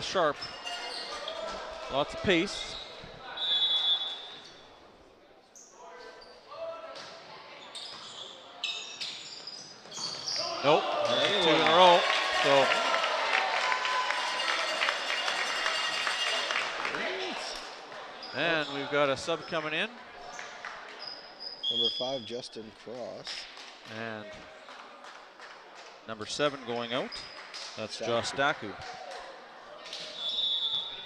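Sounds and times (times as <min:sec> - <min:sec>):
people shouting and cheering: 0:00.8 - 0:03.4, 0:10.4 - 0:19.1.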